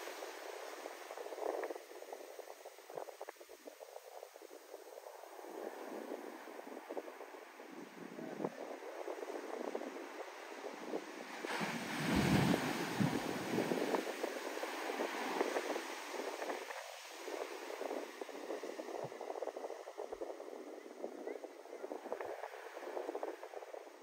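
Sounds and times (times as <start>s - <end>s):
whitewater washing up beach: 0.0s - 24.0s
wave breaking on shore: 4.2s - 24.0s.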